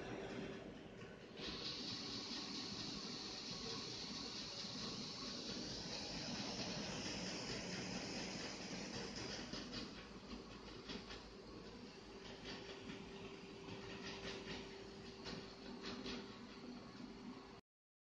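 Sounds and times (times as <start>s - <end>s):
disc drive whirring hiss: 0.0s - 17.6s.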